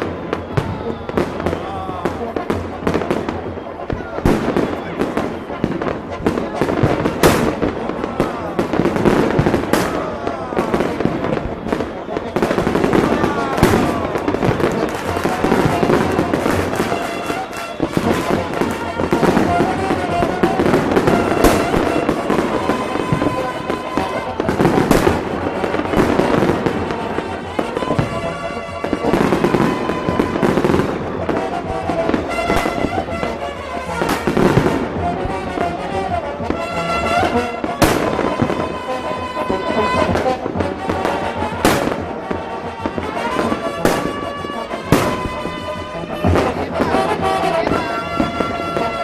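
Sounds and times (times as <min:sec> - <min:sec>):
fireworks bangs: 0:00.0 - 0:49.0
fireworks crackle: 0:00.0 - 0:49.0
music: 0:00.0 - 0:49.0
people's voices: 0:00.0 - 0:49.0.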